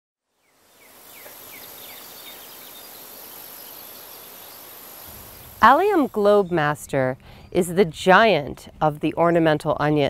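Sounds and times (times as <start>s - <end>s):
high insect drone: 0.4s - 6.6s.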